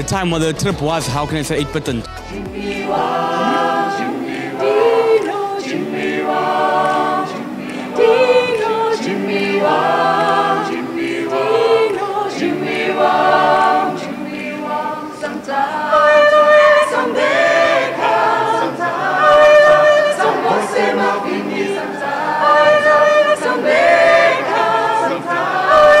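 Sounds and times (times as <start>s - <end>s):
group singing a cappella: 2.1s - 26.0s.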